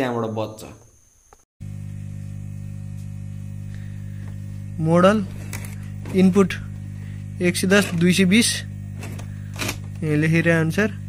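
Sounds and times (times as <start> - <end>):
electrical mains hum: 0.0 - 11.0
man speaking: 6.1 - 6.7, 7.4 - 8.7, 10.0 - 11.0.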